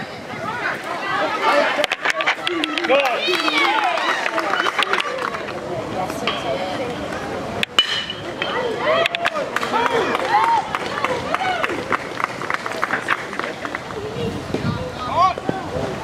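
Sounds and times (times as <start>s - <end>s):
people shouting and yelling: 0.0s - 12.2s, 12.8s - 16.0s.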